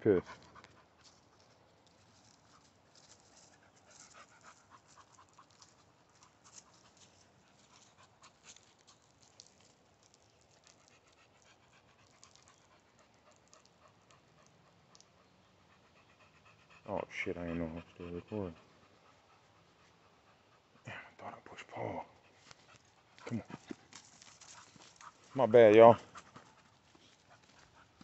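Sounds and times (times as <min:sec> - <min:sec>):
dog panting: 0:00.1 - 0:28.0
small clicks and rustles: 0:00.4 - 0:15.1, 0:22.4 - 0:25.4.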